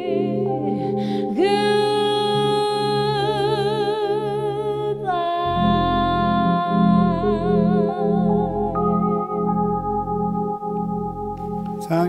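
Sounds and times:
woman singing with vibrato: 0:00.0 - 0:09.2
piano chords: 0:00.0 - 0:12.0
deep piano bass notes: 0:05.5 - 0:12.0.

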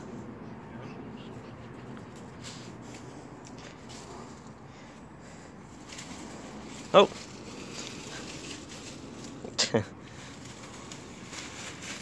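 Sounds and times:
faint rustling of leaves: 0:00.0 - 0:12.0.

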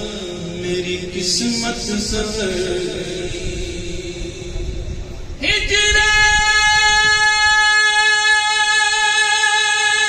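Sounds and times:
man singing long high note: 0:00.0 - 0:10.0.

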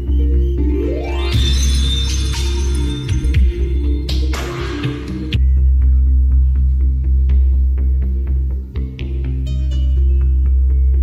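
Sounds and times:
electronic dance music: 0:00.5 - 0:05.4
bright crash: 0:01.1 - 0:03.7.

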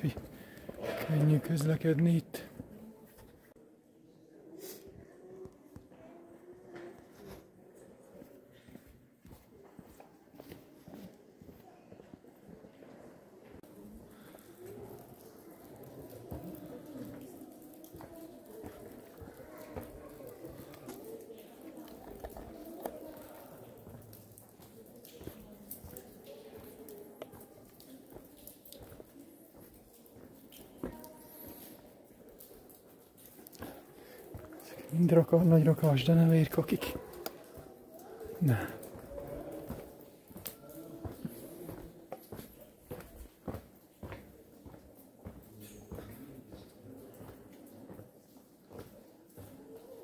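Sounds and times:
murmur of voices: 0:00.0 - 0:50.0.

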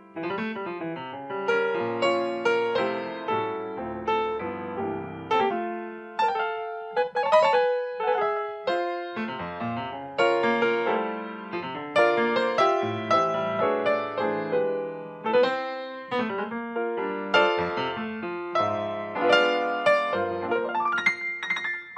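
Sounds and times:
solo grand piano: 0:00.0 - 0:21.9.

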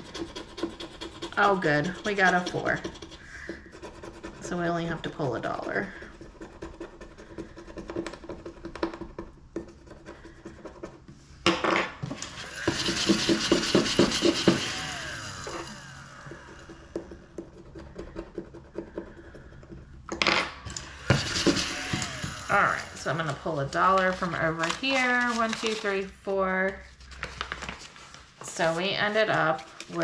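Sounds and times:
stylus scratching a card: 0:00.0 - 0:08.8, 0:09.6 - 0:11.0, 0:16.6 - 0:19.6, 0:21.1 - 0:24.4.

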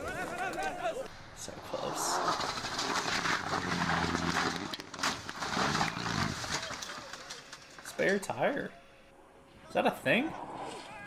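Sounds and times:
car crash: 0:02.2 - 0:07.8.

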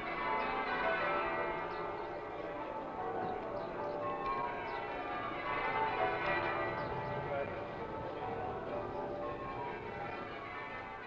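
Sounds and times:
church bells ringing a peal: 0:00.0 - 0:11.0.

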